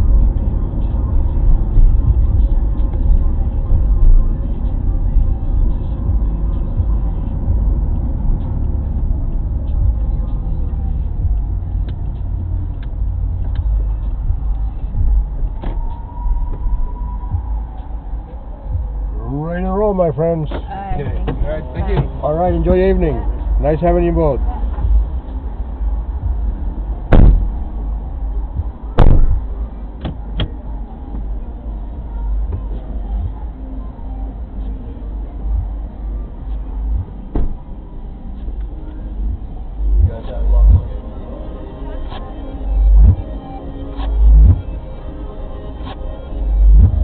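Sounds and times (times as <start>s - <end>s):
car engine and tyre rumble: 0.0s - 47.0s
heavy thumps: 26.2s - 30.6s.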